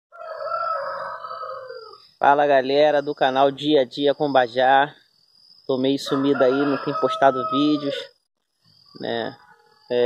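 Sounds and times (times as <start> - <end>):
rooster crowing: 0.1 - 2.1, 6.0 - 8.1, 9.3 - 10.0.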